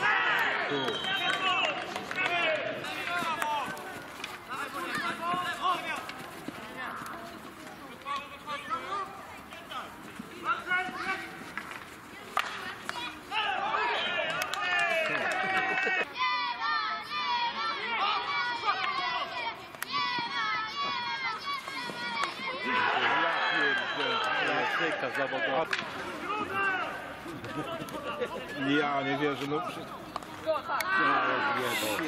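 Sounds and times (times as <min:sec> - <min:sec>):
voices shouting and calling: 0:00.0 - 0:32.0.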